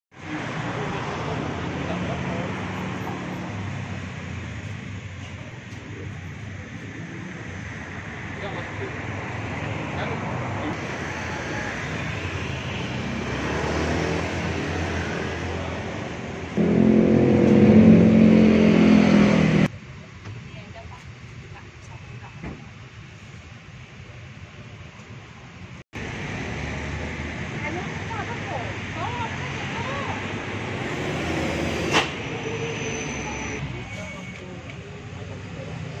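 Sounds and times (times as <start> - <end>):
vehicle engine running: 15.6 - 19.7.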